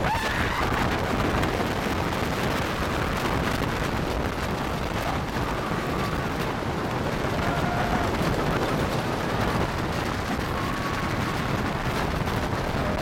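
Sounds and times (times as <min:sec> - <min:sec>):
roller coaster wheels rumbling on track: 0:00.0 - 0:13.0.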